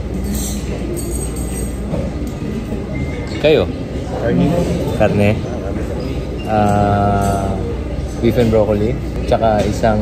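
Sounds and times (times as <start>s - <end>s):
low rumble of restaurant noise: 0.0s - 10.0s.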